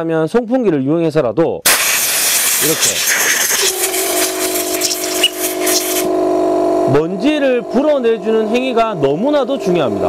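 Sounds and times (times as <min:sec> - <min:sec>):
air blow gun hissing blasts: 0:01.7 - 0:06.1
steady motor hum: 0:02.0 - 0:10.0.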